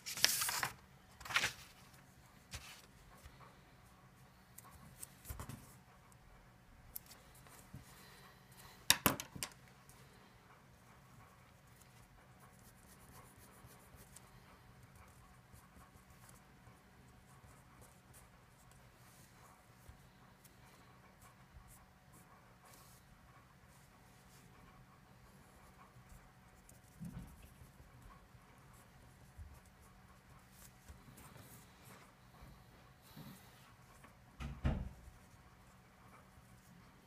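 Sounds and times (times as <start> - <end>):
marker pen scratching on paper: 10.8 - 23.0, 25.4 - 32.2.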